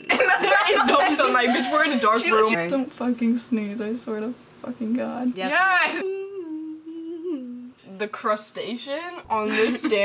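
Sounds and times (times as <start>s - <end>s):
woman humming: 5.9s - 7.9s.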